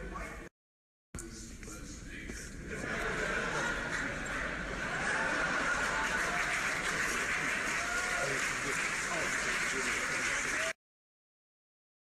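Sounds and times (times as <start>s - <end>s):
audience applauding and cheering: 3.2s - 10.8s.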